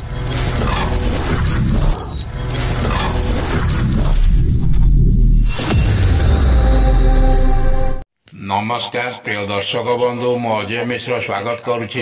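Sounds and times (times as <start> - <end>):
sharp musical hit: 5.4 - 8.0.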